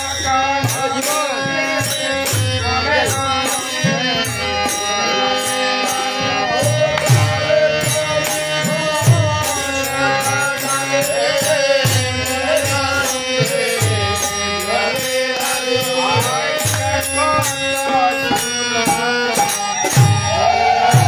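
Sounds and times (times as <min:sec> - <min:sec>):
drum beating steady rhythm: 0:00.0 - 0:21.0.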